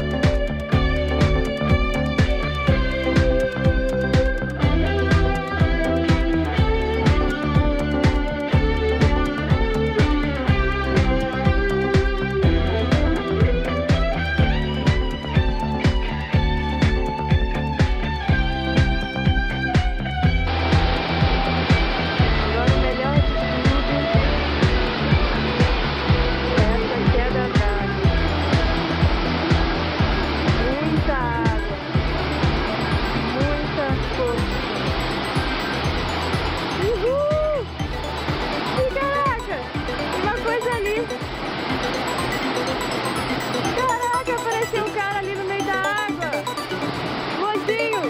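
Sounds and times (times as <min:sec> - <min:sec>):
background music with ticking beat: 0:00.0 - 0:48.0
waterfall rushing water: 0:20.5 - 0:27.2, 0:27.8 - 0:48.0.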